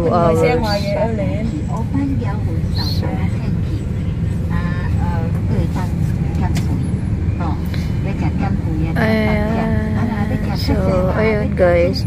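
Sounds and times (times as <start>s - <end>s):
faint voices: 0.0s - 12.0s
vehicle cabin road rumble: 0.0s - 12.0s.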